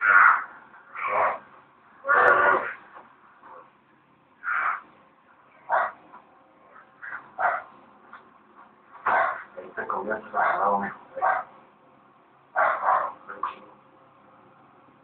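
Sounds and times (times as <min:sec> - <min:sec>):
man making animal-like calls: 0:00.0 - 0:02.9.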